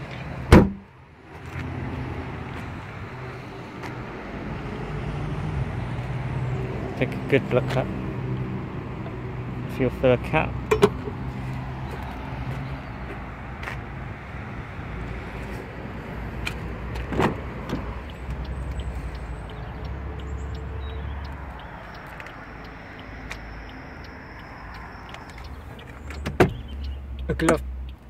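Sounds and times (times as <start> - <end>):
car door opening click: 0.5 - 0.8, 17.1 - 17.9, 25.2 - 26.7.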